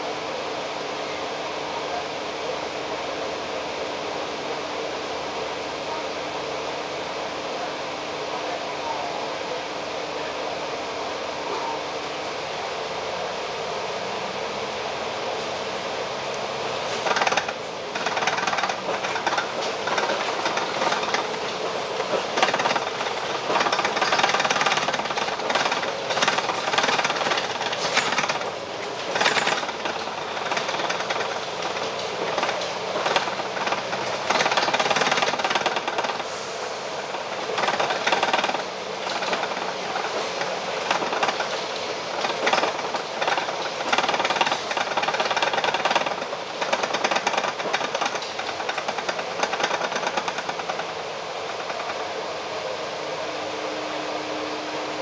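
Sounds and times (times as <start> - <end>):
bus running noise: 0.0 - 55.0
bus body rattling: 16.6 - 52.1.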